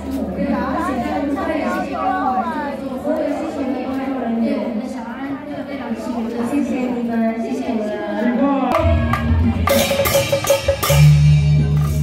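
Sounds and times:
sharp dry percussion strokes: 8.7s - 12.0s.

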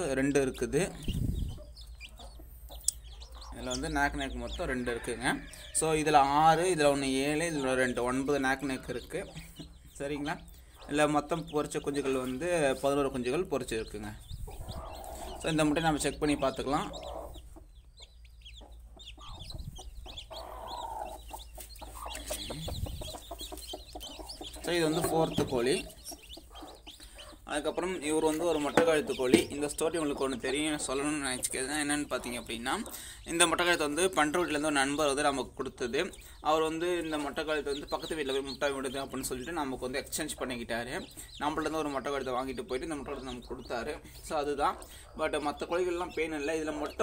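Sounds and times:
chicks peeping: 0.0s - 47.0s.

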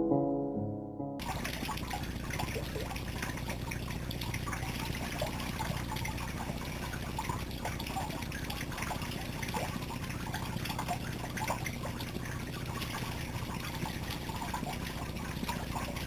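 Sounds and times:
shower spray running: 1.2s - 16.0s
small splashes: 1.2s - 16.0s.

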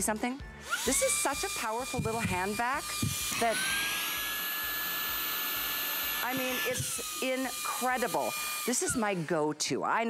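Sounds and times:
handheld vacuum motor whine: 0.6s - 9.7s.

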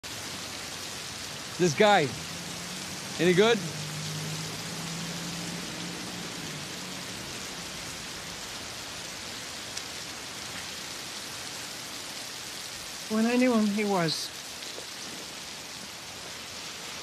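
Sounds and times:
heavy rain on hard surfaces: 0.0s - 17.0s.

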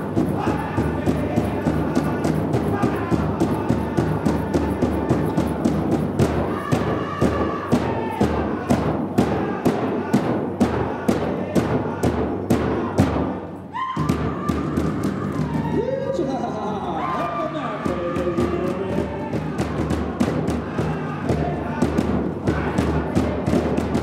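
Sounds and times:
group singing: 0.0s - 15.8s, 17.0s - 24.0s
big drum beating: 0.0s - 16.0s, 17.7s - 24.0s.

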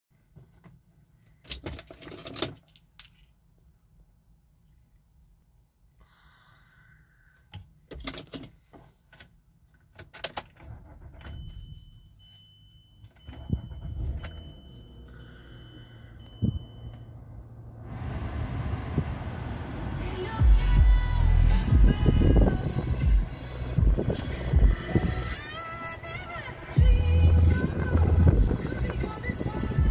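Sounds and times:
car engine cranking and idling: 9.8s - 12.0s, 13.1s - 29.9s
high warning tone: 11.5s - 17.5s.

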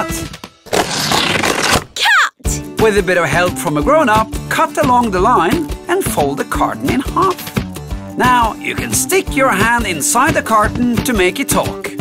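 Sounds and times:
background music: 2.4s - 12.0s.

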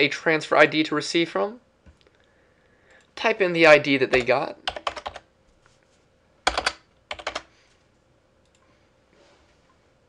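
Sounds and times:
computer keyboard typing: 4.1s - 5.3s, 6.4s - 7.5s
faint clicks: 8.4s - 8.7s.

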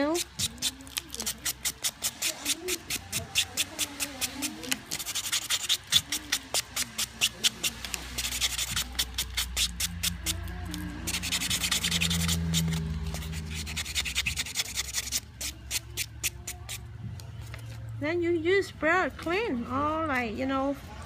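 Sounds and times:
nail buffer scratching fingernail: 0.0s - 16.8s.

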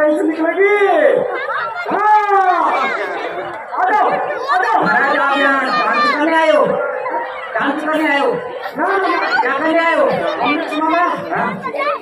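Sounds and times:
actors speaking dialogue: 0.0s - 12.0s.

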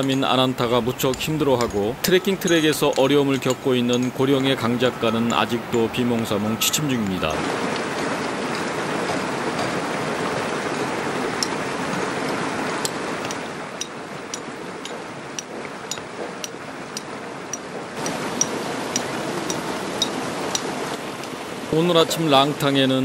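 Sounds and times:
stream water rushing: 0.0s - 23.0s
hammer striking chisel on stone: 0.9s - 4.2s, 13.2s - 20.7s.

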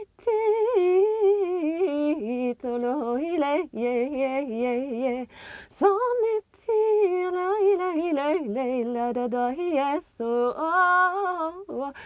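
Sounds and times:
woman singing wordless melody: 0.0s - 12.0s
woman breathing in: 5.3s - 5.8s.

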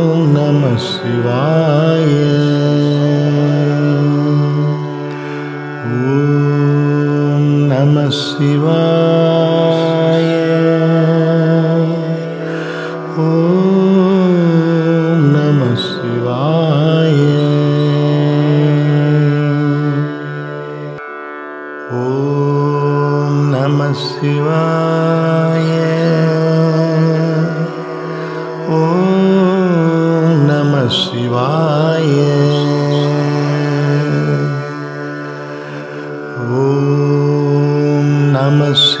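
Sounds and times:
chant sung to music: 0.0s - 21.0s, 21.8s - 39.0s.

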